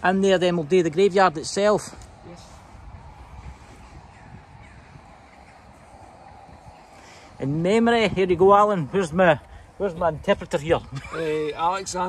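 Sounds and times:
distant crows cawing: 0:02.0 - 0:07.4.

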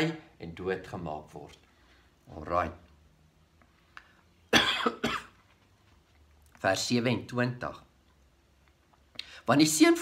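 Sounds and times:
man coughing: 0:04.5 - 0:05.4.

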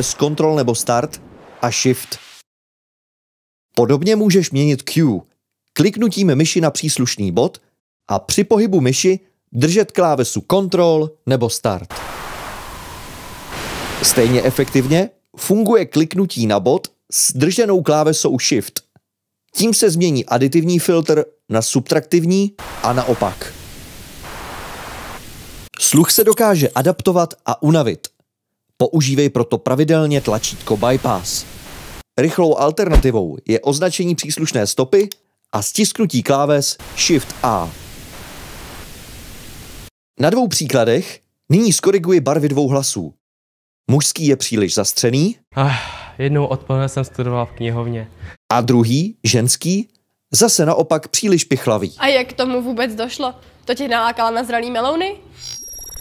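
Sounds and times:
equalised hiss test noise: 0:00.0 - 0:02.4, 0:11.9 - 0:15.1, 0:22.6 - 0:27.0, 0:30.2 - 0:32.1, 0:36.8 - 0:39.9.

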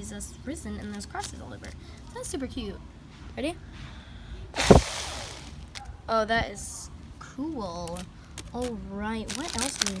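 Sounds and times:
breath blowing on pinwheel: 0:04.5 - 0:05.7.

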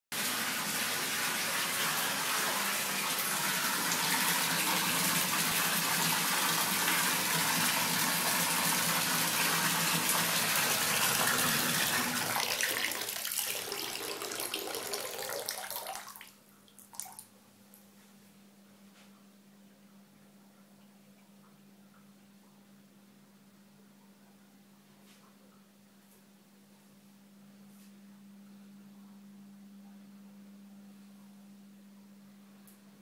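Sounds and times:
bath tap running into water: 0:00.2 - 0:17.2.

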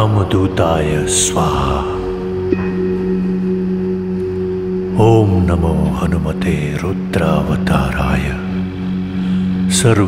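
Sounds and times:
low music drone: 0:00.0 - 0:10.0.

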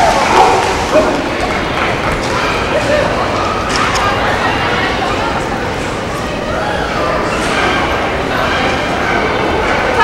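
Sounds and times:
dog barking: 0:00.3 - 0:01.2.

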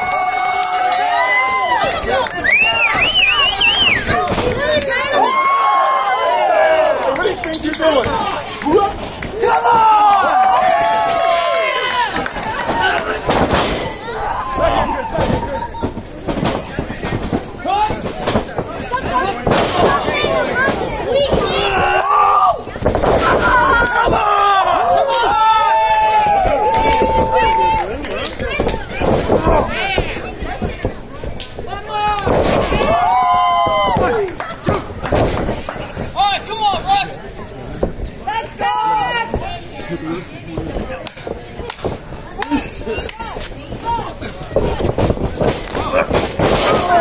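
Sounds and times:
people shouting: 0:00.0 - 0:07.1, 0:08.2 - 0:15.7, 0:21.1 - 0:27.9, 0:31.8 - 0:34.8, 0:45.9 - 0:47.0.

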